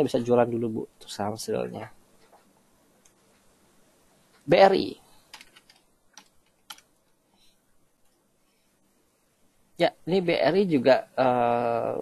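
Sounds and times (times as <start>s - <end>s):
computer keyboard keystrokes: 5.3s - 6.9s.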